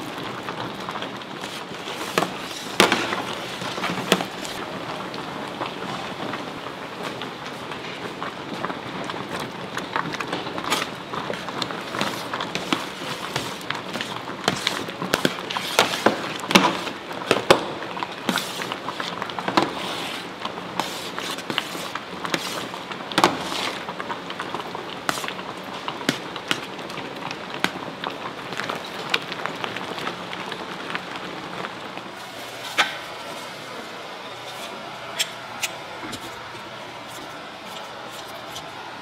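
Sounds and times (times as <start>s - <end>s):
sauce bubbling: 0.0s - 32.4s.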